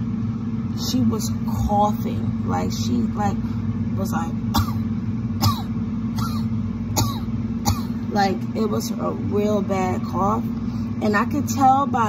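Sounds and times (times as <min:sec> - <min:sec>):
low background hum: 0:00.0 - 0:12.0
woman coughing: 0:04.5 - 0:08.1.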